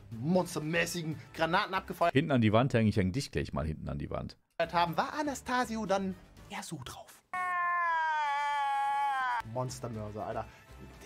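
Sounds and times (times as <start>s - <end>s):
high-pitched comedy wailing cry: 7.4s - 9.4s.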